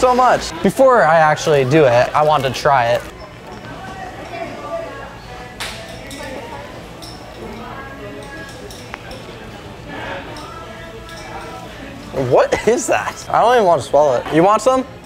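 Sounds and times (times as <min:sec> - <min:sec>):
background chatter of voices: 0:00.0 - 0:15.0.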